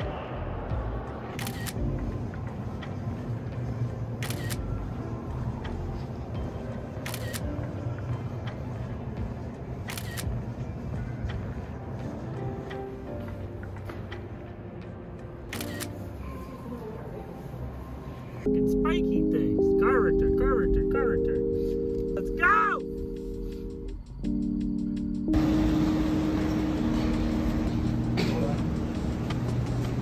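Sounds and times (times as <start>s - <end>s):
background music: 0.0s - 30.0s
camera shutter clicks: 1.4s - 1.8s, 4.2s - 4.6s, 7.0s - 7.4s, 9.9s - 10.3s, 15.5s - 16.0s.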